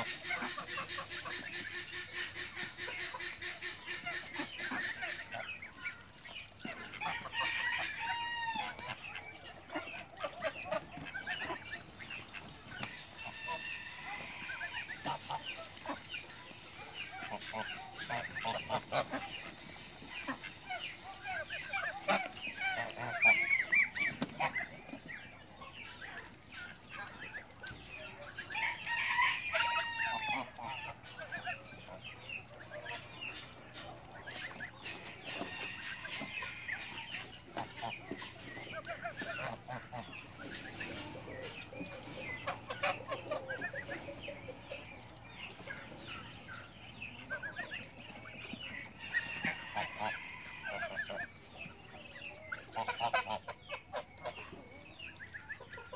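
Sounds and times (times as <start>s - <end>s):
chickens clucking: 0.0s - 55.9s
geese calling: 25.9s - 55.9s.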